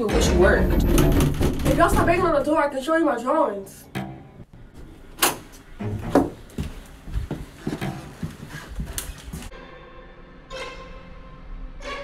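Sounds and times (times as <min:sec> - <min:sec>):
irregular knocks and thumps: 0:00.1 - 0:02.4
eerie music with held tones: 0:09.5 - 0:12.0.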